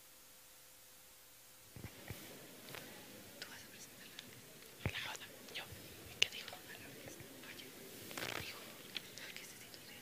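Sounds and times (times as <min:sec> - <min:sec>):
faint whispering voices: 0:01.8 - 0:10.0.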